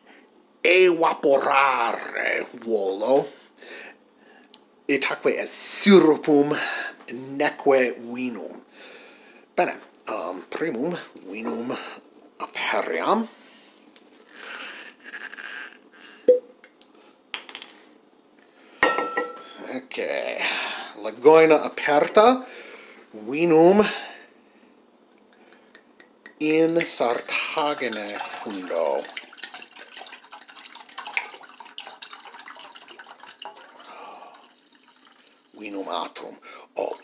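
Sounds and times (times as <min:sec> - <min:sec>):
wine pouring into a metal pan: 0:26.8 - 0:36.2.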